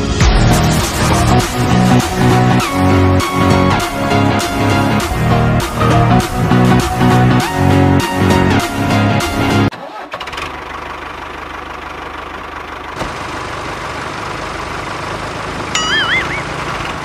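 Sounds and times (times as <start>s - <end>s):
background music: 0.0s - 9.7s
small engine idling: 9.8s - 17.0s.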